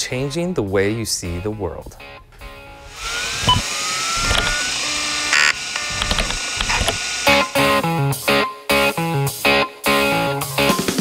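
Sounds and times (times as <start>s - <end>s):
electric guitar theme music: 2.0s - 3.6s, 4.2s - 11.0s
scattered clicks: 4.2s - 4.6s, 5.4s - 7.0s.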